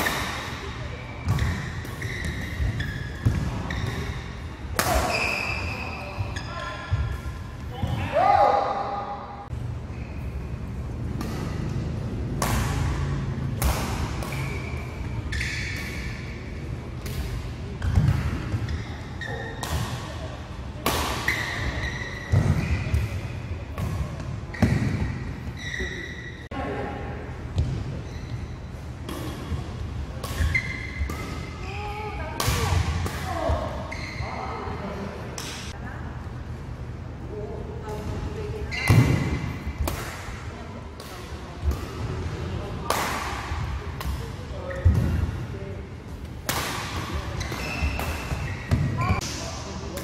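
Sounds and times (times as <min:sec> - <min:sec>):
shoes squeaking on court: 0:01.0 - 0:04.4, 0:05.1 - 0:07.4, 0:14.2 - 0:16.6, 0:17.8 - 0:19.7, 0:21.3 - 0:23.4, 0:24.5 - 0:26.5, 0:27.6 - 0:28.8, 0:30.4 - 0:31.9, 0:33.8 - 0:34.6, 0:47.2 - 0:49.2
rackets hitting shuttlecock: 0:11.1 - 0:18.8, 0:20.8 - 0:25.3, 0:29.0 - 0:31.6, 0:38.7 - 0:42.1, 0:42.8 - 0:45.2, 0:46.2 - 0:50.0.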